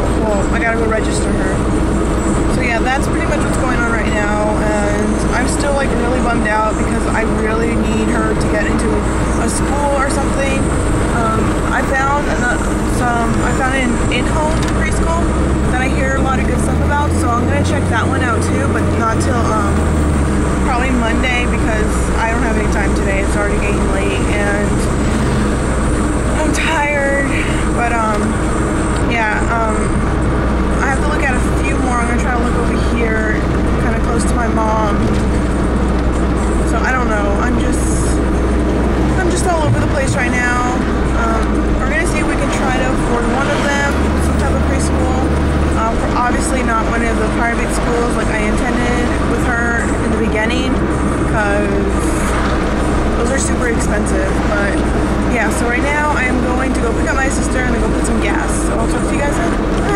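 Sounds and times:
woman talking: 0.0s - 1.8s, 2.4s - 20.0s, 20.6s - 25.2s, 26.2s - 35.5s, 36.4s - 38.4s, 39.0s - 59.9s
car engine hum: 0.0s - 59.9s
road noise: 0.0s - 59.9s.

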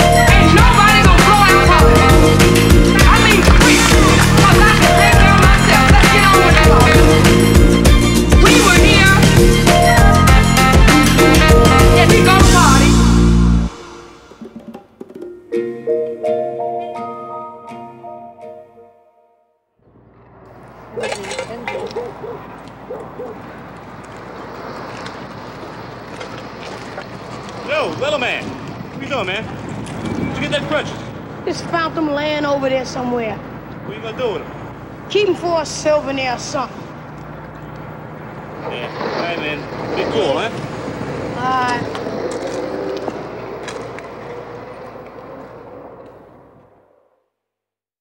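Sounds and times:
traffic noise: 0.0s - 14.4s, 19.8s - 47.3s.

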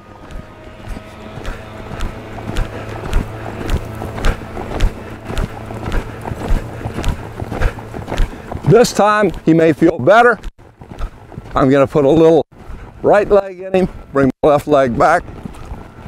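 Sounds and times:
steady low hum: 0.0s - 14.3s
horse hoofbeats on sand: 0.0s - 16.0s.

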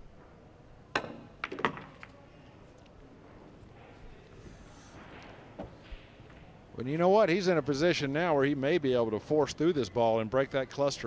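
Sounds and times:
cue striking ball click: 0.9s - 2.2s
pool balls clacking: 0.9s - 2.3s.

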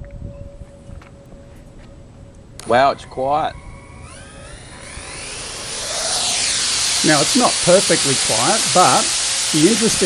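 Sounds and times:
faint sweeping tones: 0.3s - 10.0s
drone air whoosh: 2.8s - 9.8s.

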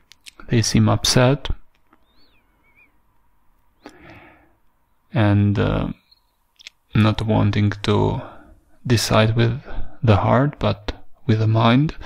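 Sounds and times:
soft breath: 3.8s - 4.7s, 8.2s - 8.8s.

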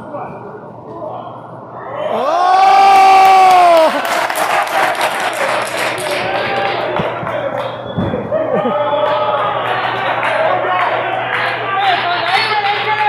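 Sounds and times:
crowd cheering and shouting: 1.7s - 13.0s.

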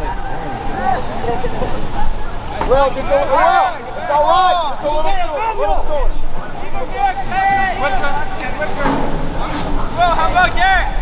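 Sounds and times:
people shouting: 2.2s - 11.0s.

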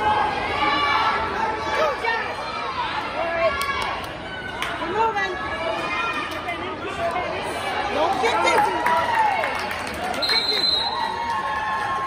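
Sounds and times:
spectators and coaches shouting: 0.0s - 12.0s.

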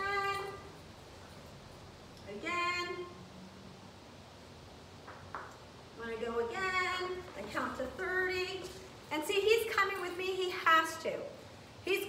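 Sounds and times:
woman speaking: 0.0s - 0.7s, 2.3s - 3.2s, 6.0s - 12.0s
faint steady hiss: 0.0s - 12.0s.

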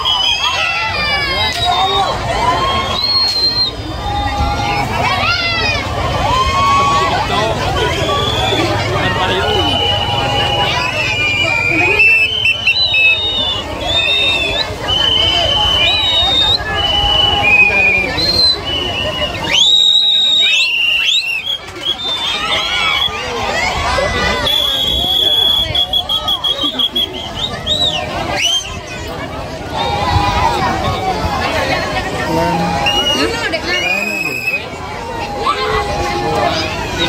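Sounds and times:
shrill whistles blowing: 0.0s - 4.5s, 7.8s - 23.3s, 24.4s - 29.0s, 32.8s - 34.7s
crowd chatter: 0.0s - 37.0s.

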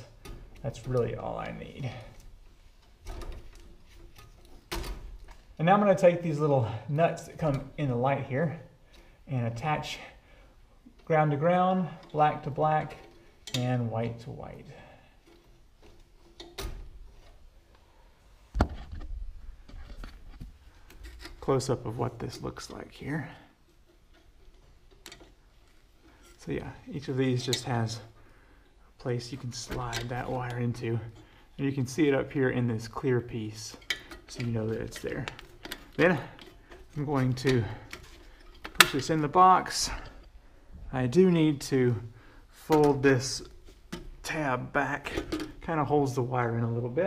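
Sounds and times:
wire strippers scraping insulation: 19.7s - 28.2s, 29.0s - 40.3s.

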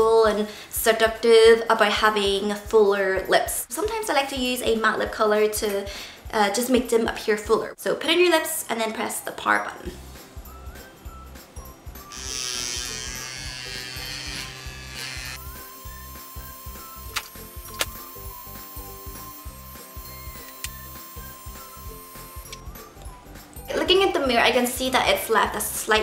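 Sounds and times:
background music with steady beat: 0.2s - 7.8s, 9.8s - 26.0s
small suction pump running: 12.1s - 22.8s.

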